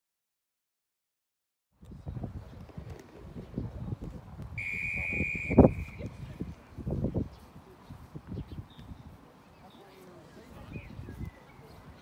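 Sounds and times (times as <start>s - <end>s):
referee's whistle blast: 4.6s - 6.1s.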